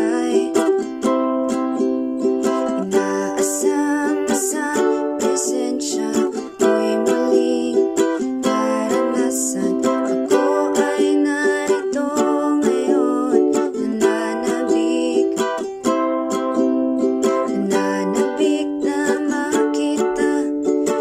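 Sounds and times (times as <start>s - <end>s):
ukulele strumming: 0.0s - 21.0s.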